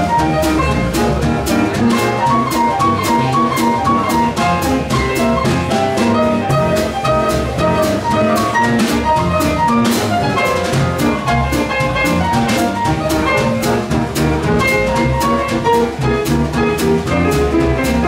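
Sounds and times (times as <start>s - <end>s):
drum kit cymbals and drums: 0.0s - 18.0s
grand piano runs: 0.0s - 18.0s
walking double bass: 0.0s - 18.0s.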